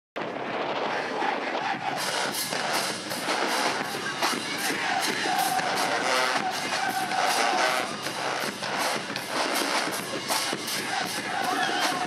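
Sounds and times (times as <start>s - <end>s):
crowd murmur: 0.7s - 12.0s.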